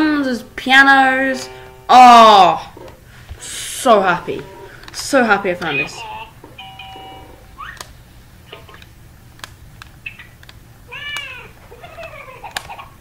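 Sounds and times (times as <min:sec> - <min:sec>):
electronic toy tones: 0:05.6 - 0:07.8
toy button clicks: 0:08.6 - 0:11.4.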